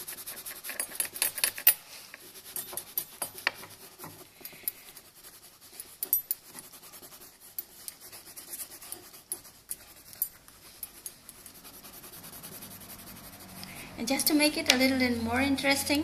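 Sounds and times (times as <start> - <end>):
colouring stick scratching paper: 0.0 - 1.2, 2.2 - 15.8.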